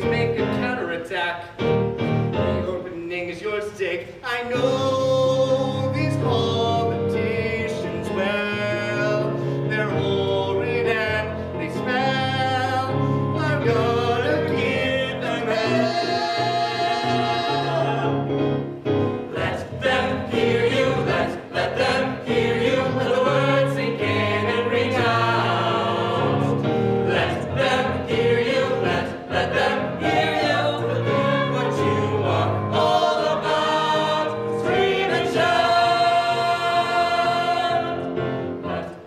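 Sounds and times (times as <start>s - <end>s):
keyboard accompaniment: 0.0s - 3.3s, 4.5s - 39.0s
group singing musical theatre song: 2.2s - 39.0s.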